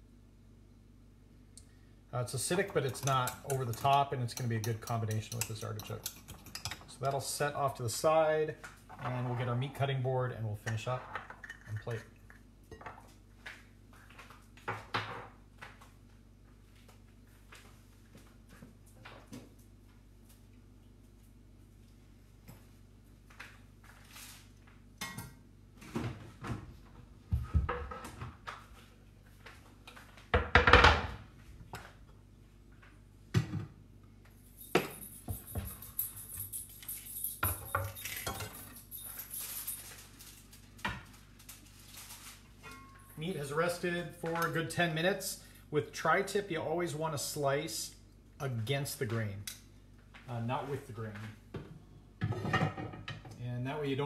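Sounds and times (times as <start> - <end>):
knocks and thuds of kitchen items: 25.9 - 28.5, 30.3 - 31.2, 33.3 - 33.8, 51.5 - 53.3.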